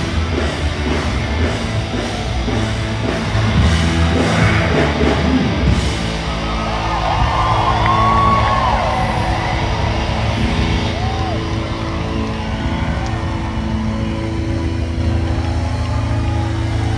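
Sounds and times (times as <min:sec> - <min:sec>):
crowd cheering and shouting: 0:00.0 - 0:16.9
rising and falling yells: 0:06.1 - 0:16.9.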